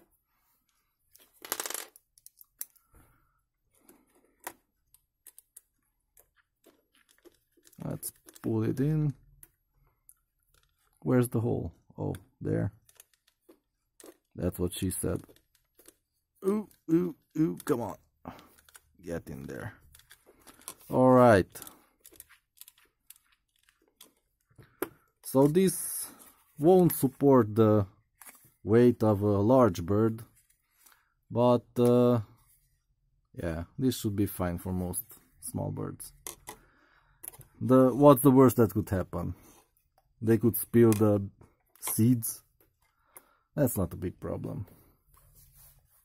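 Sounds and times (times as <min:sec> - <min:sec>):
light plastic clicks and crinkles: 0:00.6 - 0:11.1, 0:12.0 - 0:27.2, 0:36.0 - 0:37.7
screwdriver bits rattling: 0:04.8 - 0:08.7, 0:19.6 - 0:24.4.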